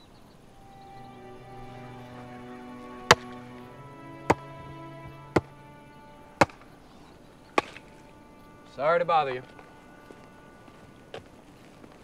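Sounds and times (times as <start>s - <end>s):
background music sustained tones: 0.0s - 12.0s
hand tool striking wood: 7.6s - 7.8s.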